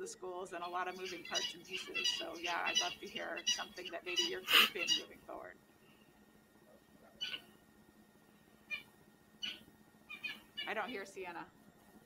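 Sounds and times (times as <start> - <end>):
faint high-pitched animal calls: 0.7 - 5.1, 6.7 - 7.6, 8.7 - 11.0.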